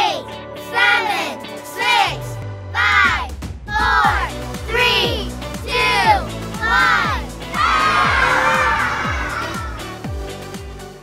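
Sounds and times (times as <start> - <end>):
children counting down: 0.0 - 10.0
children shouting and cheering: 0.0 - 10.1
music with kick drum: 2.4 - 10.8.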